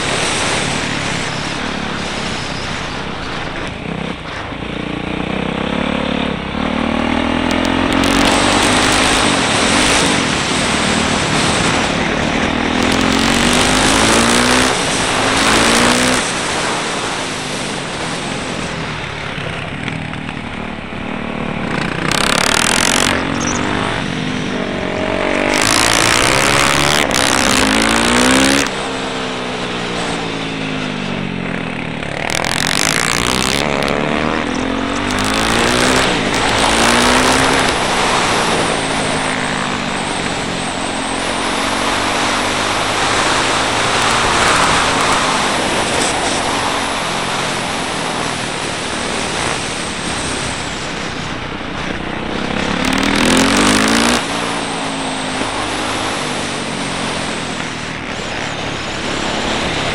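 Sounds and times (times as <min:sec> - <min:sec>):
motorcycle engine revving: 0:00.0 - 0:59.9
wind noise on microphone: 0:07.2 - 0:59.9.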